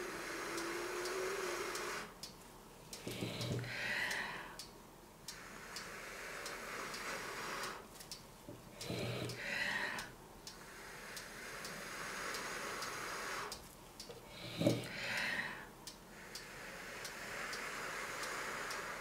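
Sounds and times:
faint evenly spaced ticks: 0.0 - 19.0.

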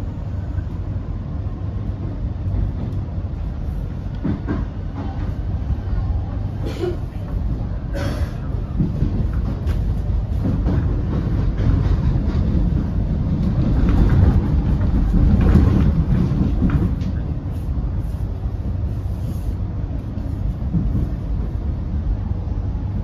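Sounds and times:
train wheels rumbling on rail: 0.0 - 23.0
wheels clicking over rail joints: 7.3 - 17.3.

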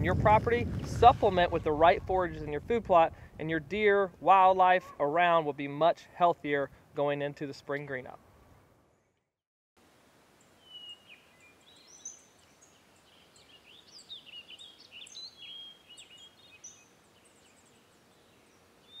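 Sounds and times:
faint steady hiss: 9.8 - 19.0
songbirds chirping: 10.4 - 19.0.

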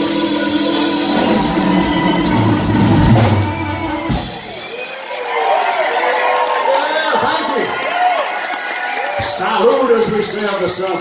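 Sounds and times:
blues band playing: 0.0 - 4.7
drums: 0.0 - 5.0.

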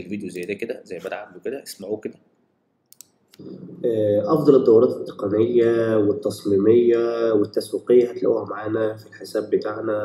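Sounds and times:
man's recorded voice: 0.0 - 2.3, 3.4 - 10.0
mouse clicks: 2.9 - 3.4.

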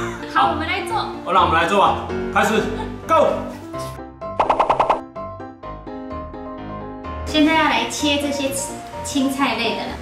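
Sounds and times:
light background music: 0.0 - 10.0
percussive transition effect: 4.4 - 5.1.

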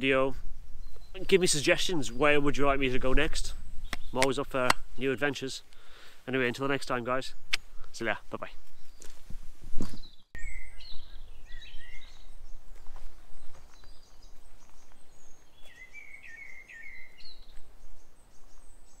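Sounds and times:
bird chirping and warbling: 9.8 - 19.0.

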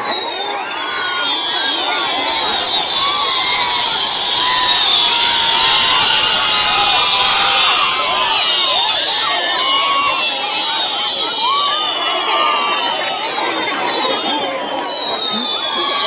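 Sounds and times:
crowd shouting and cheering: 0.0 - 16.0
fireworks whistling: 0.0 - 16.0.

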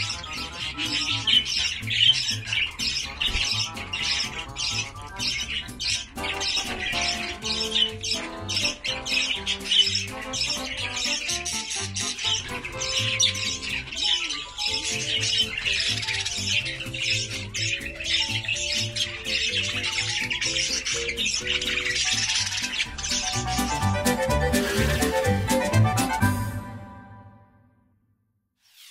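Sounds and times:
budgerigars chattering: 0.0 - 26.3
background music: 0.0 - 27.8.

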